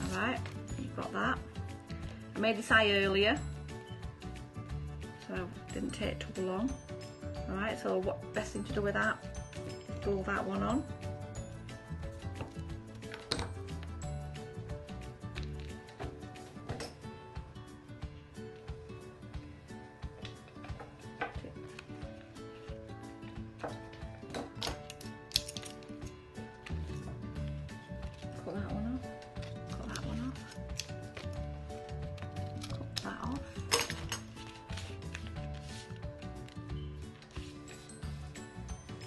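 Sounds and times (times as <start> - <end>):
background music: 0.0 - 39.0
paper being handled: 29.2 - 38.2.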